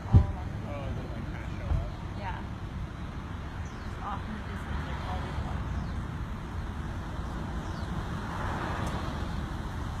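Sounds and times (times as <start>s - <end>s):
car passing: 0.0s - 10.0s.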